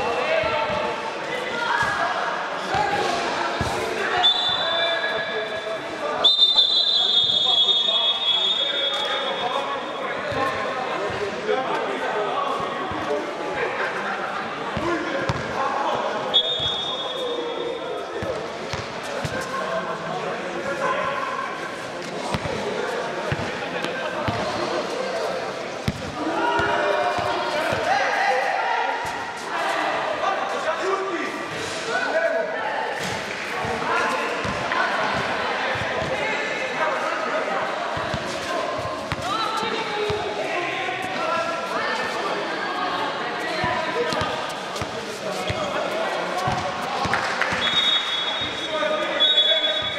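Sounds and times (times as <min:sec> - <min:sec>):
basketball bouncing on court: 0:25.8 - 0:27.9, 0:46.5 - 0:46.8.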